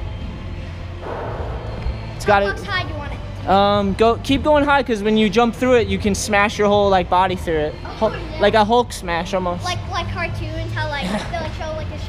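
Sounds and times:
low hum: 0.0s - 3.5s.

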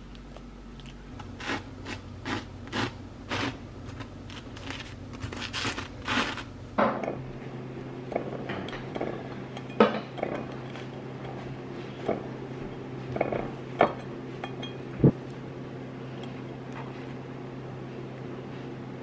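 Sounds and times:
low steady hum: 0.0s - 19.0s
kitchenware clinking: 8.1s - 14.9s.

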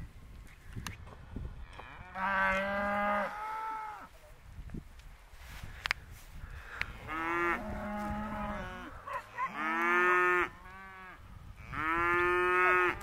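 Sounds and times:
cattle mooing: 7.0s - 13.0s.

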